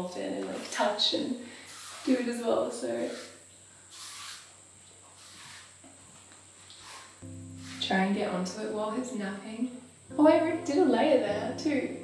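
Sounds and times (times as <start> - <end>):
paintbrush swishes on wall: 0.4 - 1.0, 1.6 - 8.1.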